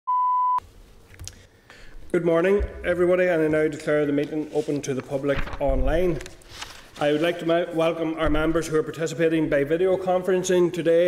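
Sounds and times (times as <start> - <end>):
electronic beep: 0.1 - 0.6.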